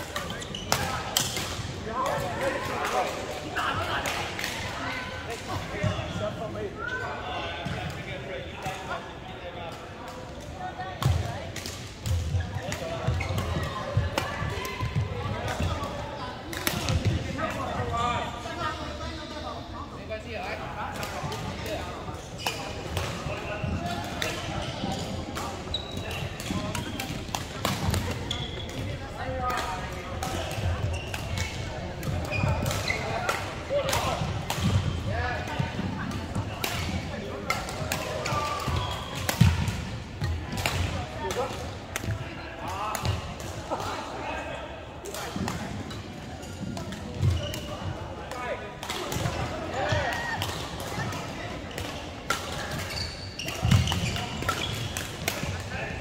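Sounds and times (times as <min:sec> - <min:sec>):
players chattering in echoing hall: 0:00.0 - 0:56.0.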